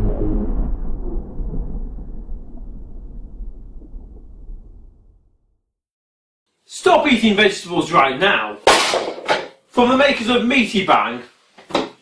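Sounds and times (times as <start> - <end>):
deep rumbling boom: 0.0 - 5.6.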